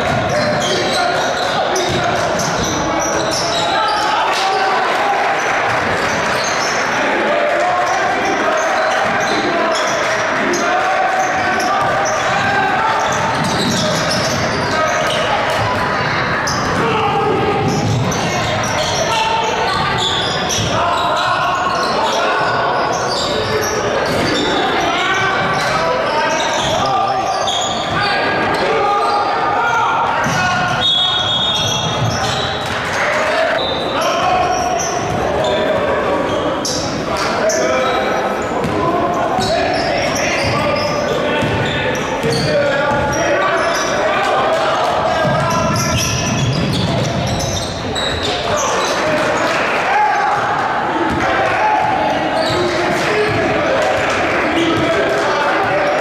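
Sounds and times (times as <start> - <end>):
crowd voices and shouting: 0.0 - 56.0
basketball bouncing on court: 1.8 - 2.8, 11.8 - 19.0, 30.2 - 30.8, 41.4 - 43.2, 45.2 - 47.7
players' footwork: 38.1 - 56.0.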